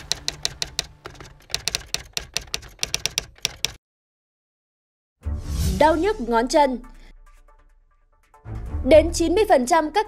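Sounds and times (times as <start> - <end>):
typewriter key clicks: 0.0 - 3.8.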